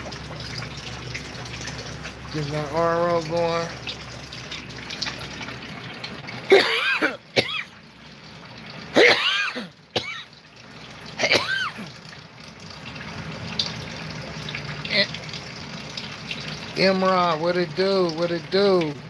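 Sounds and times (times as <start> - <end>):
water trickling into plastic bucket: 0.0 - 19.0
man coughing harshly: 6.5 - 7.7, 9.0 - 10.3, 11.2 - 11.9.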